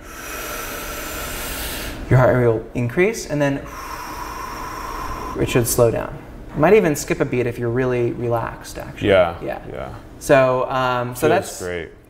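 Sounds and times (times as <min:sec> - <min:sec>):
man breathing in: 0:00.0 - 0:02.1, 0:03.6 - 0:05.5.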